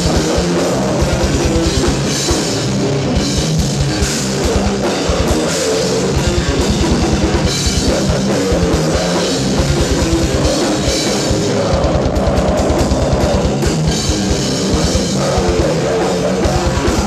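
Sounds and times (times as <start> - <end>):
fast bass drum strokes: 0.0 - 17.0
metal band playing live: 0.0 - 17.0.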